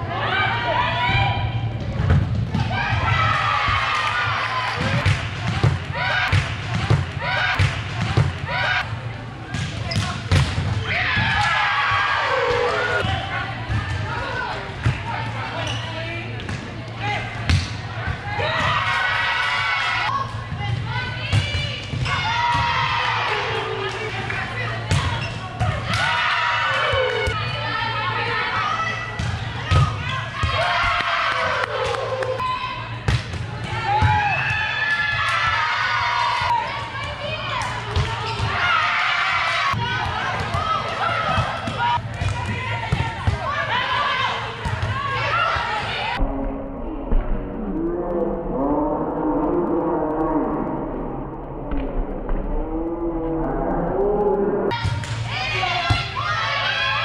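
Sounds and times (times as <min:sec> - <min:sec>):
players shouting in echoing gym: 0:00.0 - 0:57.0
steady low hum: 0:44.3 - 0:56.4.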